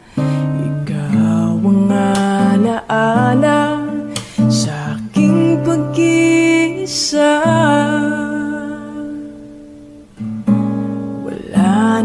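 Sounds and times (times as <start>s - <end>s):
person singing: 0.0s - 9.5s, 11.2s - 12.0s
acoustic guitar strumming: 0.0s - 12.0s.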